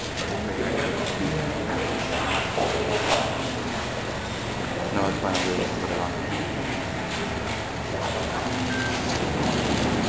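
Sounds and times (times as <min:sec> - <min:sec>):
rumbling crowd background noise: 0:00.0 - 0:10.0.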